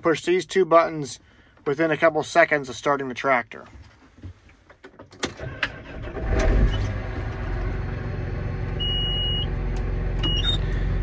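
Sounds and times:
tractor diesel engine idling: 5.4 - 11.0
electronic beep: 10.3 - 10.6.

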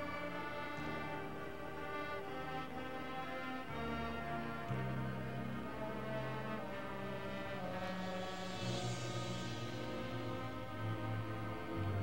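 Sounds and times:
brass band sustained chord: 0.0 - 12.0
hiss: 8.0 - 11.0.

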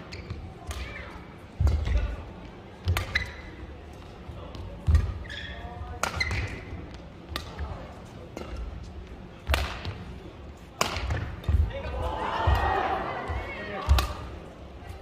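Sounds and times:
racket hitting shuttlecock: 2.8 - 3.4, 4.8 - 5.4, 6.0 - 7.7, 9.4 - 10.0, 10.8 - 11.7, 13.8 - 14.4
shoes squeaking on court: 2.8 - 6.9.

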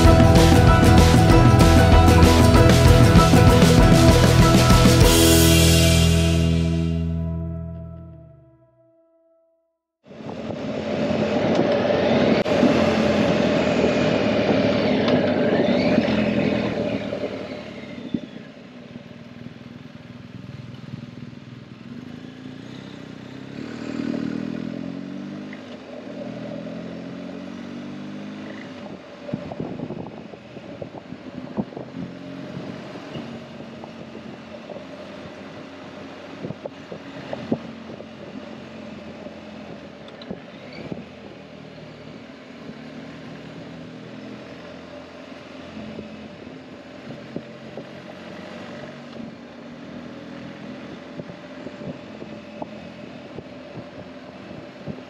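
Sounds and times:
motorcycle engine revving: 0.0 - 7.2, 10.1 - 55.0
wind noise: 10.1 - 18.4, 28.8 - 35.6, 36.4 - 38.5.

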